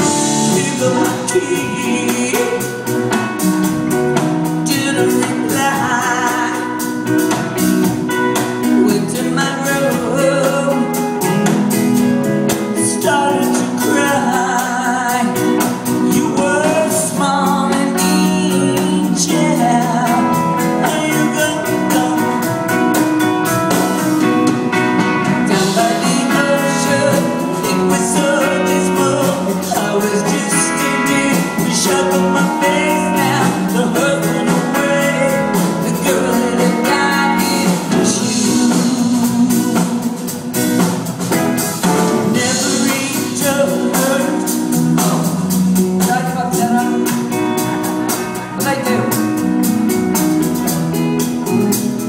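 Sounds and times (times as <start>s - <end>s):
live rock band playing: 0.0s - 52.0s
woman singing lead: 0.0s - 52.0s.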